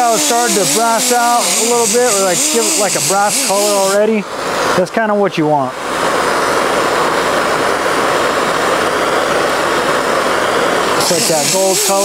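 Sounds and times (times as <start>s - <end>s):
air grinder wire wheel whir: 0.0s - 4.8s, 5.8s - 12.0s
torch flame: 5.8s - 12.0s.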